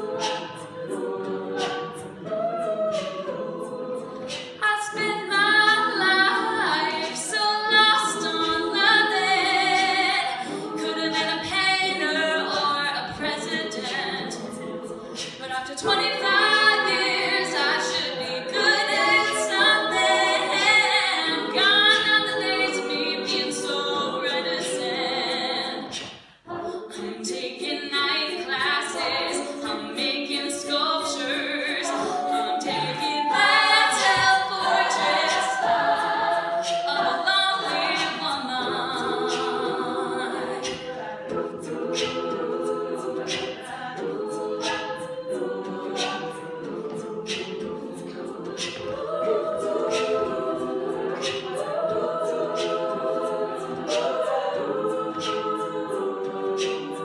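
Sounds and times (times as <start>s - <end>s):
percussive beat: 0.0s - 57.0s
sung backing harmonies: 0.0s - 57.0s.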